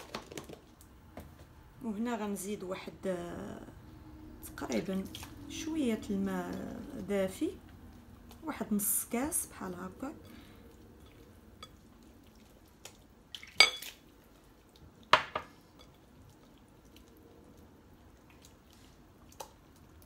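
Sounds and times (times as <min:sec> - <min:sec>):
glass clinks: 0:13.6 - 0:13.9.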